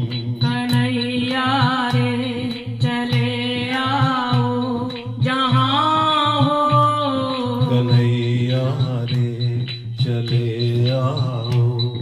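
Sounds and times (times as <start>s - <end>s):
hand claps: 0.0s - 12.0s
person singing devotional song: 0.0s - 12.0s.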